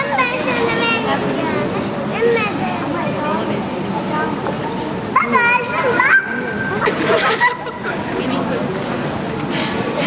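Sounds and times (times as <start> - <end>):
children chattering: 0.0 - 10.0
child's high voice: 5.1 - 7.0.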